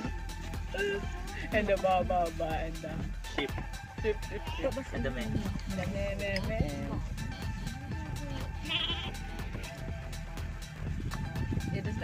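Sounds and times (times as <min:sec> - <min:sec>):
background music with steady beat: 0:00.0 - 0:12.0
goat bleating: 0:08.3 - 0:09.4.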